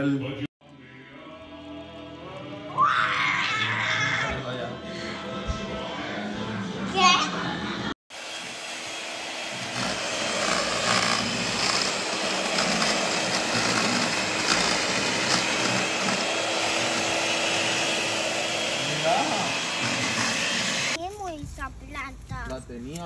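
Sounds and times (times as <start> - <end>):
electric hand mixer running: 8.1 - 21.0.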